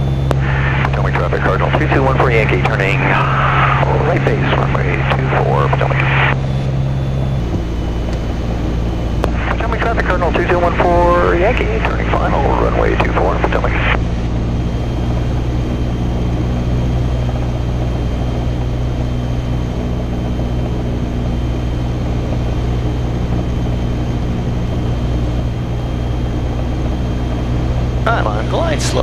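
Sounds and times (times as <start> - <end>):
propeller plane engine droning: 0.0 - 29.0.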